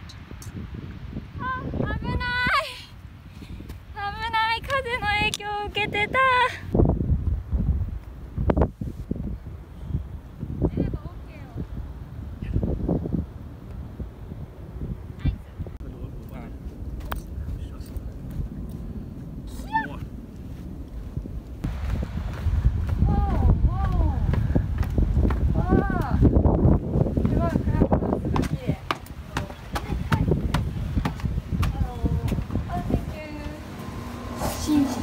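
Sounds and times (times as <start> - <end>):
wind rumble on microphone: 0.0 - 35.0
footsteps climbing stairs: 27.1 - 32.7.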